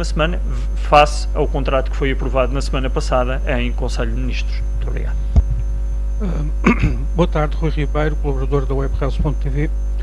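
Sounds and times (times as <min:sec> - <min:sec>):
low electrical mains hum: 0:00.0 - 0:10.0
microphone handling thump: 0:04.8 - 0:05.8.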